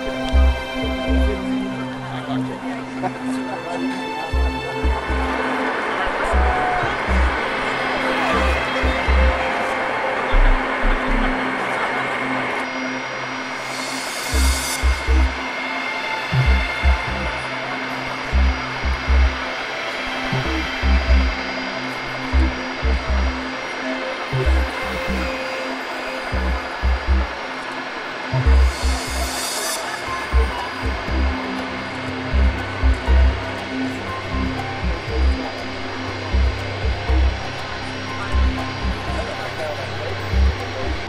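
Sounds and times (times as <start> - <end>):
jet engines whining: 0.0 - 41.0.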